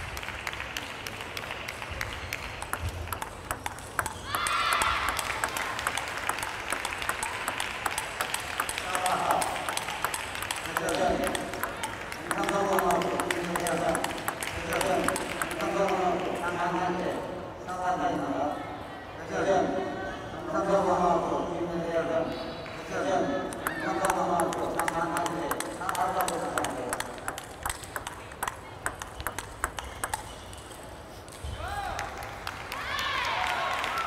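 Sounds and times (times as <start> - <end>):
table tennis balls clicking: 2.6 - 16.0, 23.5 - 31.4.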